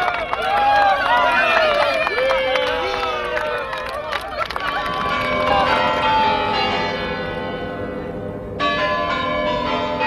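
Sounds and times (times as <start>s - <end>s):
bells ringing: 2.8s - 10.0s.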